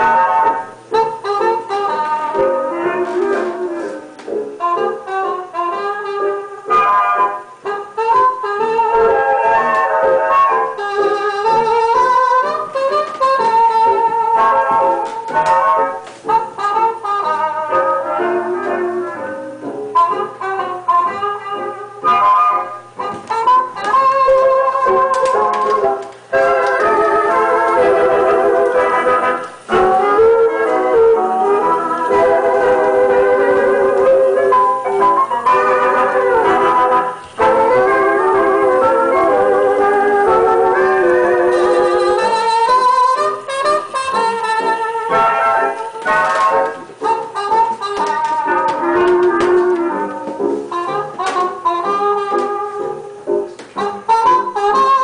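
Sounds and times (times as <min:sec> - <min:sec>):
jukebox playing dance-band record: 0:00.0 - 0:55.0.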